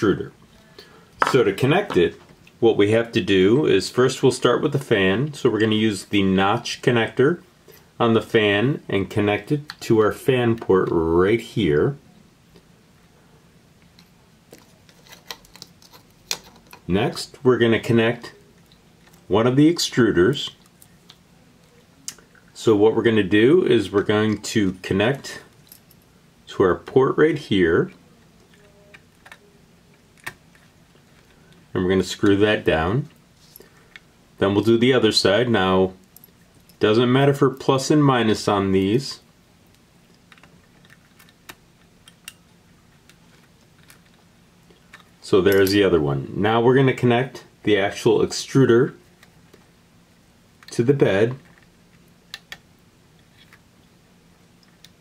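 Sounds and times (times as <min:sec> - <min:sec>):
low steady hum: 0:00.0 - 0:55.0.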